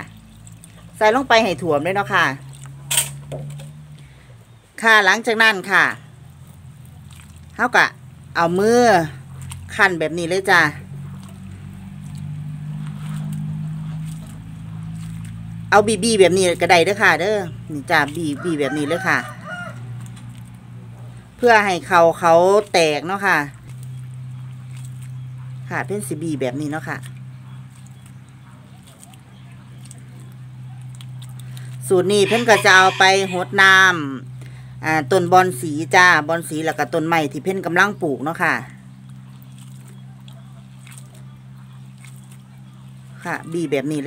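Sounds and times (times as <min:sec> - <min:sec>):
steady low hum: 0:00.0 - 0:43.5
wet rice squelching in water: 0:00.0 - 0:44.0.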